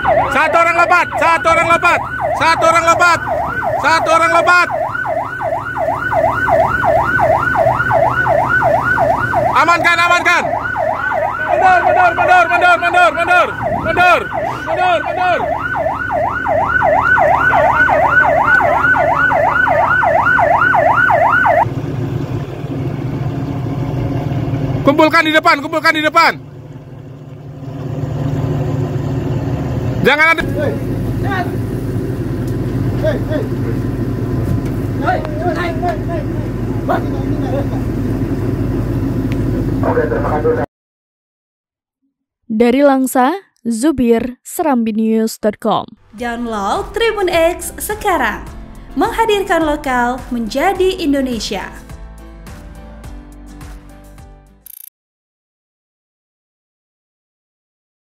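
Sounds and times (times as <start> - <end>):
yelp siren wailing: 0.0 - 21.7
low engine rumble: 0.0 - 40.7, 46.0 - 51.9
person shouting: 11.4 - 15.5.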